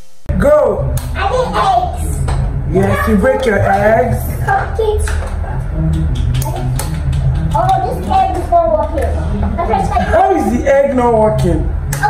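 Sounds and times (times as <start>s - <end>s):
background music: 0.3s - 12.0s.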